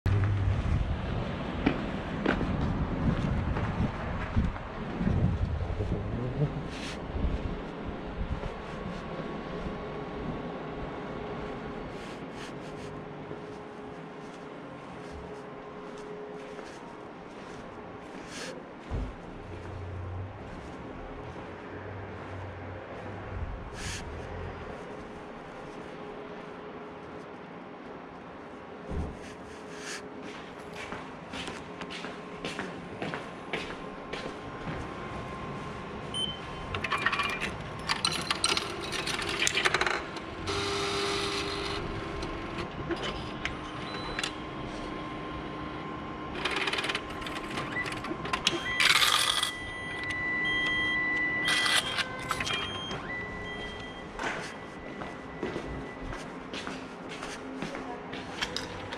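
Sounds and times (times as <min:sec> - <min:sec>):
steady hum: 0:00.1 - 0:58.9
short electronic beeps: 0:36.2 - 0:36.7, 0:48.5 - 0:56.0
machine clicks and knocks: 0:36.7 - 0:40.3.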